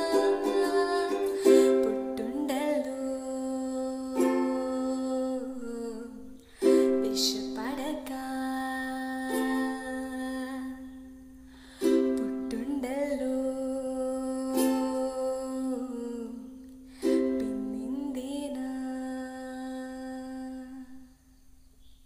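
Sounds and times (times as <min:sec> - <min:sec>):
ukulele chords strummed: 0:00.0 - 0:10.8, 0:11.7 - 0:13.6, 0:14.2 - 0:18.6
woman singing: 0:00.0 - 0:11.2, 0:11.8 - 0:21.1.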